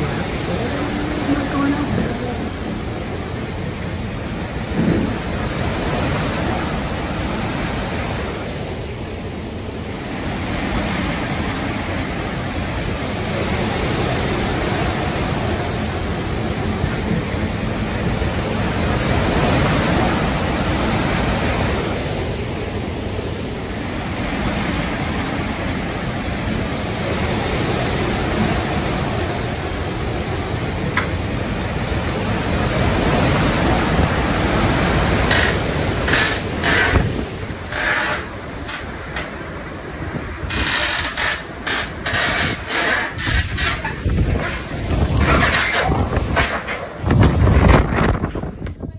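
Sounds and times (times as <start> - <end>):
driving rain: 0.0 - 48.9
gusting wind: 0.0 - 48.9.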